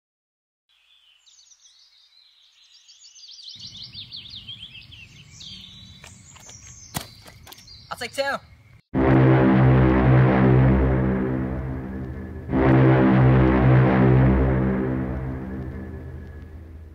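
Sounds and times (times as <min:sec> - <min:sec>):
outdoor background noise: 0:00.7 - 0:08.8, 0:09.6 - 0:16.9
small bird chirping: 0:00.7 - 0:08.8.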